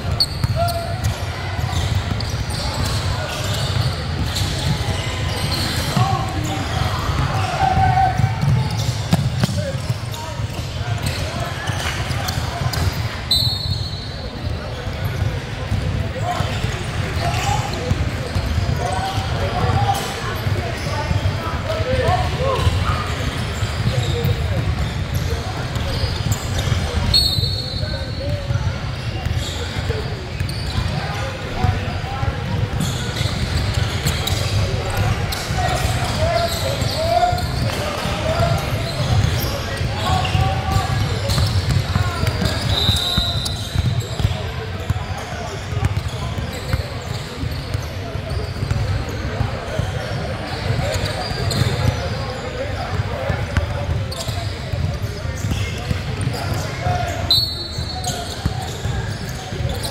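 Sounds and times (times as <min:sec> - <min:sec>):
sneakers squeaking: 0:00.0 - 0:59.9.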